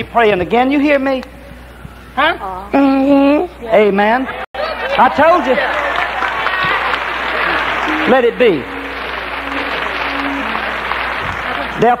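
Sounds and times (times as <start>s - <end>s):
congregation applauding: 4.6s - 12.0s.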